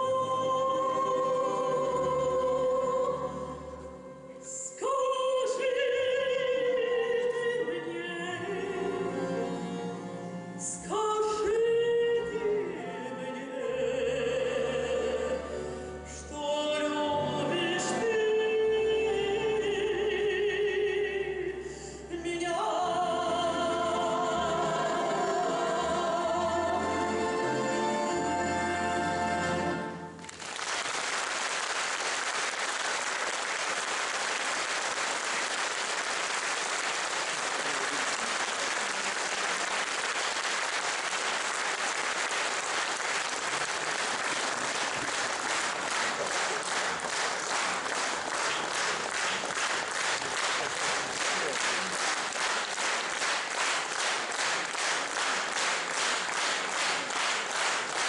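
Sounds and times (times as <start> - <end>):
audience applauding: 30.2 - 58.0
rhythmic clapping in unison: 30.2 - 58.0.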